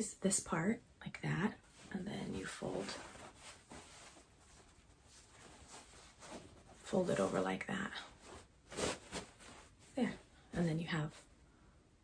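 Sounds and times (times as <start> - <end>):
fabric bag rustling: 1.6 - 10.7.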